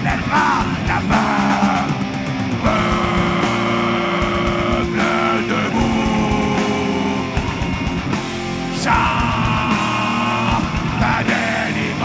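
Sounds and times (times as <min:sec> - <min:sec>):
distorted electric guitars: 0:00.0 - 0:12.0
pounding drums: 0:00.0 - 0:12.0
voices singing held notes: 0:00.0 - 0:12.0.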